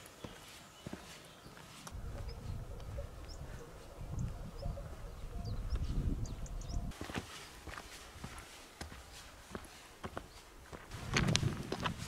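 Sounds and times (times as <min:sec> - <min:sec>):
footsteps on stony trail: 0:00.0 - 0:03.6, 0:06.9 - 0:12.0
wind buffeting microphone: 0:01.9 - 0:07.0, 0:10.9 - 0:12.0.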